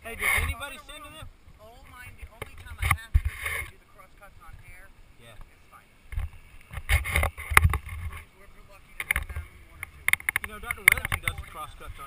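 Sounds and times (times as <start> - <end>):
wind buffeting microphone: 6.1 - 8.2.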